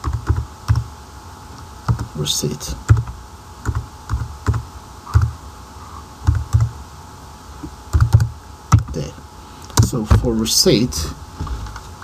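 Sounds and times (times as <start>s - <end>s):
computer keyboard typing: 0.0s - 0.9s, 1.8s - 2.2s, 2.9s - 5.4s, 6.2s - 6.7s, 7.9s - 9.0s.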